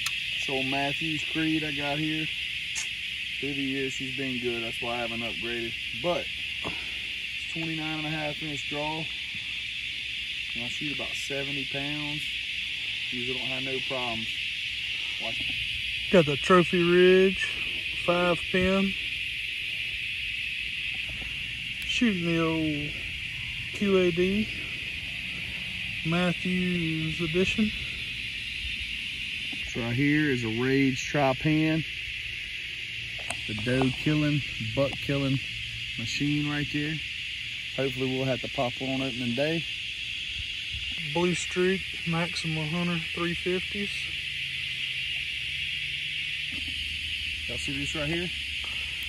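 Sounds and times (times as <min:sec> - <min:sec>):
insect chorus buzzing: 0:00.0 - 0:49.0.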